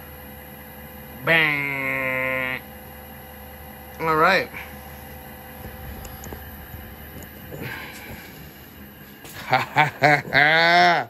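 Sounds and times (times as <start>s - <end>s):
conveyor dryer machine hum: 0.0s - 11.0s.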